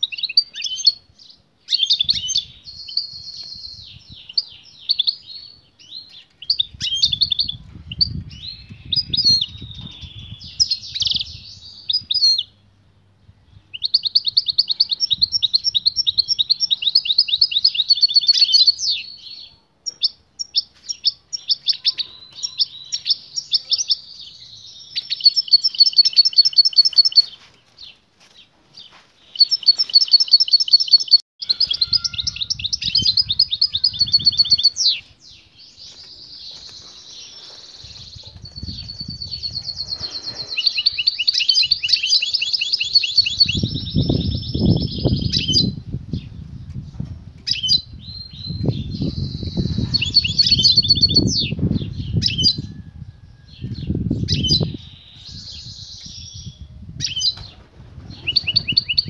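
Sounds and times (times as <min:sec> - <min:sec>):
goldfinch twittering song: 0:47.4 - 0:52.7.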